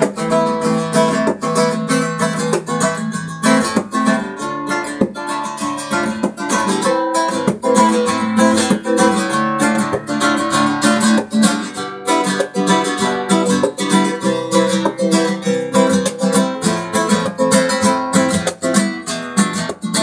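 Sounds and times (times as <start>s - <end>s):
flamenco guitar strumming: 0.0s - 20.0s.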